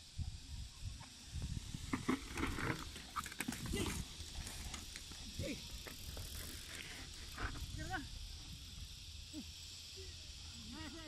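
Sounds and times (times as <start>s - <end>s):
wind rumbling on microphone: 0.0s - 9.2s
steady high hiss: 0.0s - 11.0s.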